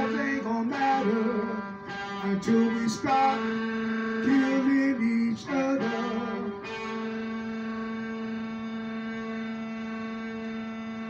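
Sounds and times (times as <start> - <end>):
electronic keyboard sustained note: 0.0 - 11.0.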